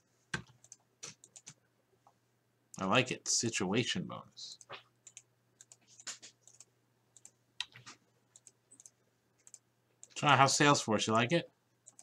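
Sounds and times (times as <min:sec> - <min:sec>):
computer mouse clicks: 0:00.3 - 0:01.6, 0:04.6 - 0:10.2.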